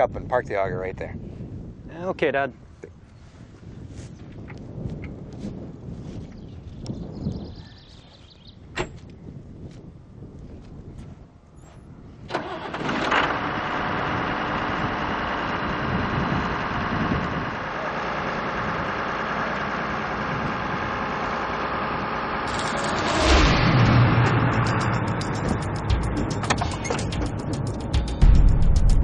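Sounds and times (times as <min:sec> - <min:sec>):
diesel tractor engine running: 0:12.3 - 0:28.8
loud burst with low hum: 0:22.4 - 0:26.5.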